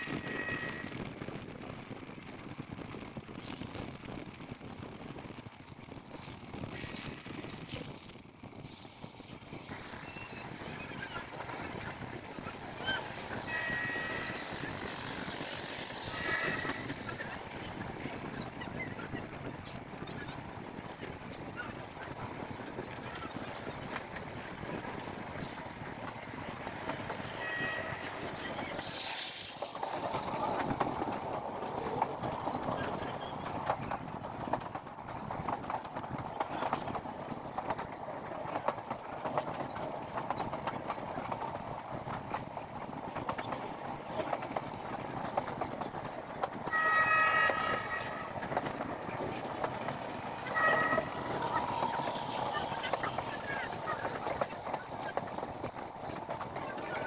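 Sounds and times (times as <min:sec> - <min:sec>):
train coach rumbling and rattling: 0:00.0 - 0:57.0
wheels clicking over rail joints: 0:00.0 - 0:57.0
wind noise: 0:00.0 - 0:57.0.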